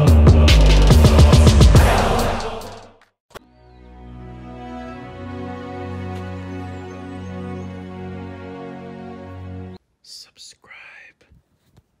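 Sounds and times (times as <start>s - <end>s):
person whispering: 10.0s - 11.4s.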